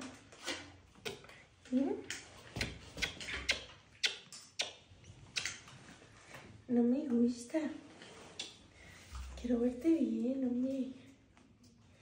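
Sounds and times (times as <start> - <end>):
kisses lip smacks: 2.1 - 5.7, 8.4 - 8.6.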